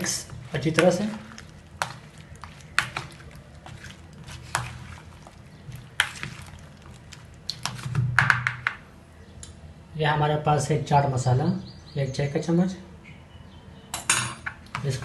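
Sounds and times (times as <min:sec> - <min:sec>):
wet squelching of fruit: 0:00.0 - 0:08.0.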